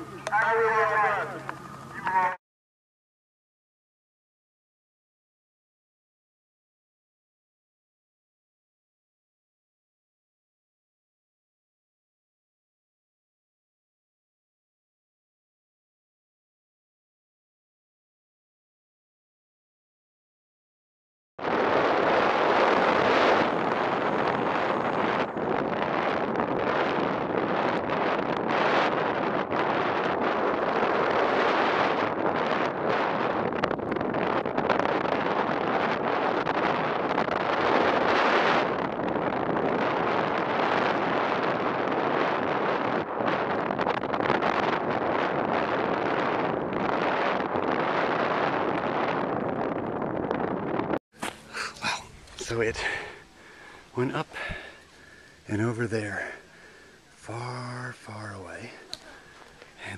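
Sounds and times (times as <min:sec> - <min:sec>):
wind rushing over microphone: 0:00.0 - 0:02.4, 0:21.4 - 0:59.9.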